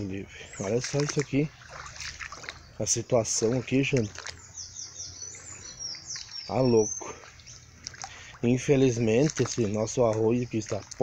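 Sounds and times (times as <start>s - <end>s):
bird singing whistled notes: 2.4s - 7.7s.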